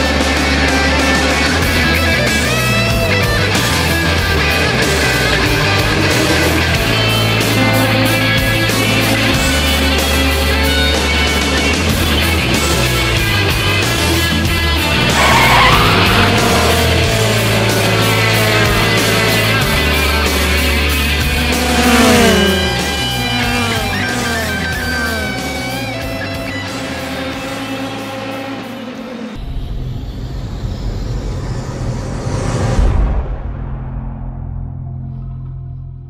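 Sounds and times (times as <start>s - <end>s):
rock music with guitar: 0.0s - 28.7s
race car passing: 0.0s - 29.4s
deep low rumble: 29.7s - 36.0s.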